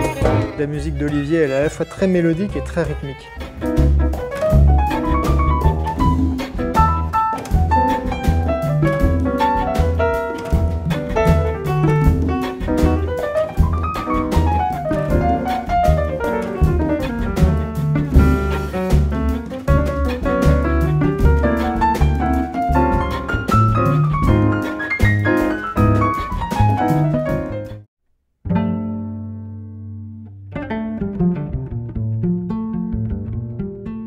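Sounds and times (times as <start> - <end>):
drums: 0.0 - 0.7, 3.4 - 27.7
strings: 0.0 - 27.0
repeated low bass figure: 3.4 - 24.6
piano running in flowing lines: 3.4 - 27.8.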